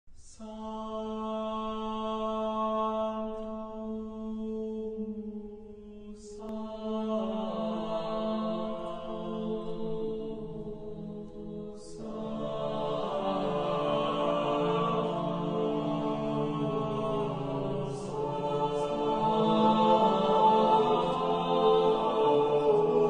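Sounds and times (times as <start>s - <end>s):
voice chanting a mantra: 0.2s - 23.0s.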